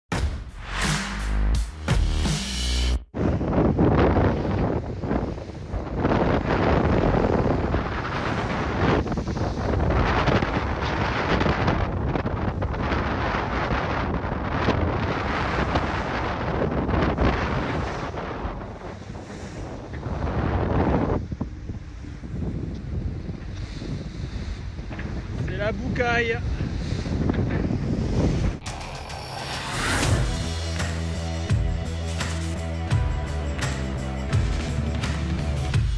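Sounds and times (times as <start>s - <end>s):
wind buffeting microphone: 3.1s - 31.9s
water rushing along hull: 3.3s - 28.7s, 29.4s - 35.9s.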